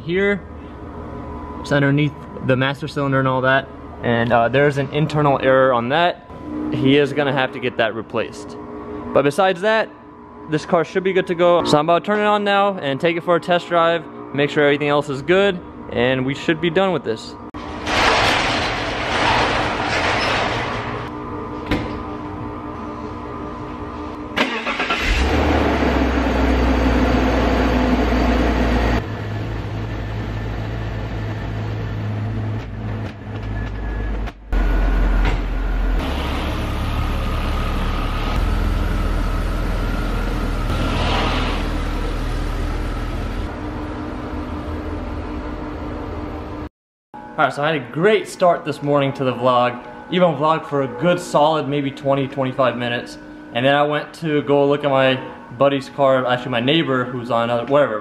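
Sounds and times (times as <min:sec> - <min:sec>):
car engine starting and idling: 0:24.3 - 0:32.7, 0:34.5 - 0:44.3.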